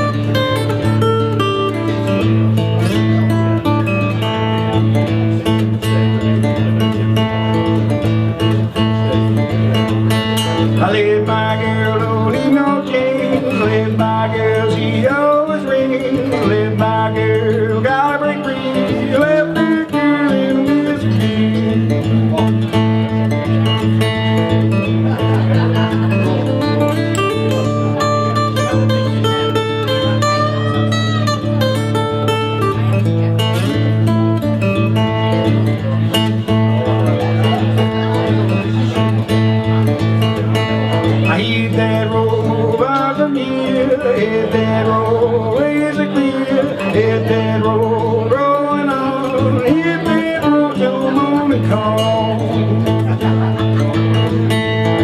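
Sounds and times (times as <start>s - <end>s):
acoustic guitar strumming: 0.0s - 55.0s
person singing: 10.6s - 22.5s, 41.2s - 53.4s.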